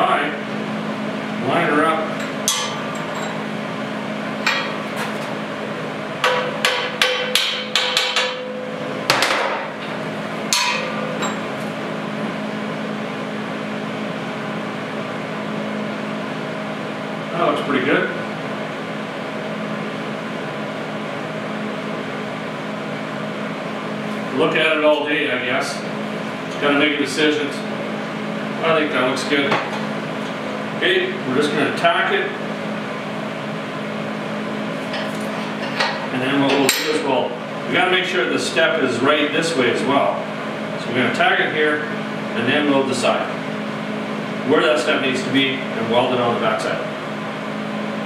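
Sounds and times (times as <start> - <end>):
steady background hum: 0.0 - 48.0.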